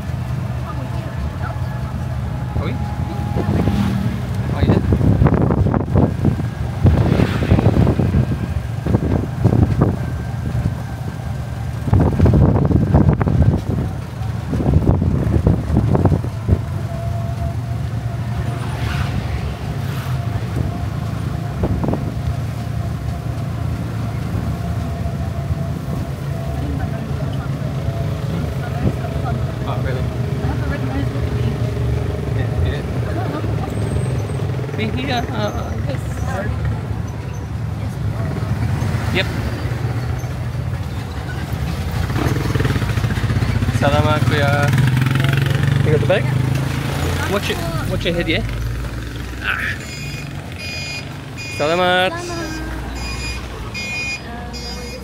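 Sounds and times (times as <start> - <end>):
road rumble: 0.0 - 55.0
wind noise on microphone: 3.3 - 17.7, 19.1 - 23.2.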